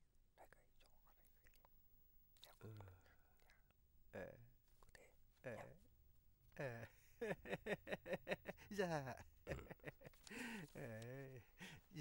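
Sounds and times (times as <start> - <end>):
man whispering: 0.3 - 1.7, 2.4 - 5.8.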